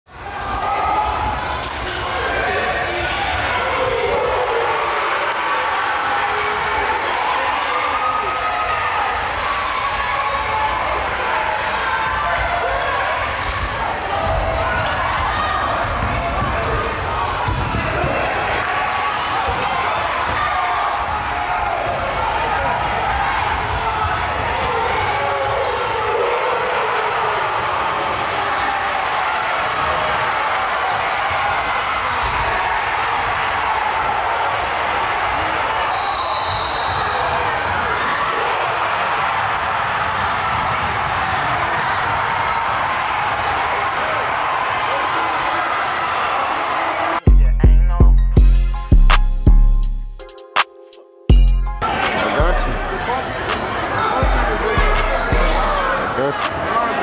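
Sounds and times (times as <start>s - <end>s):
crowd voices echoing: 0.1s - 57.0s
basketball bouncing on hardwood: 14.2s - 16.8s, 17.4s - 18.0s.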